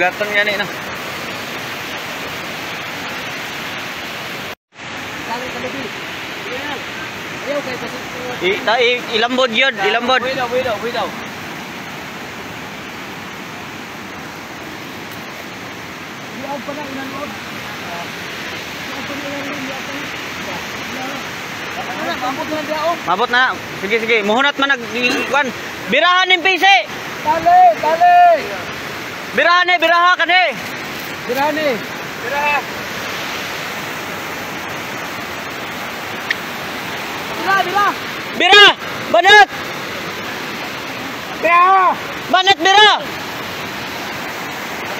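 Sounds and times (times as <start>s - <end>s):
flooded river roaring: 0.0s - 44.9s.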